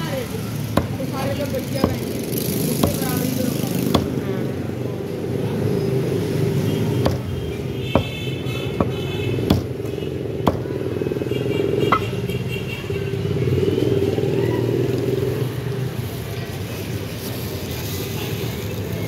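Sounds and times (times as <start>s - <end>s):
cleaver chopping on wooden block: 0.7s - 4.2s, 6.9s - 10.8s.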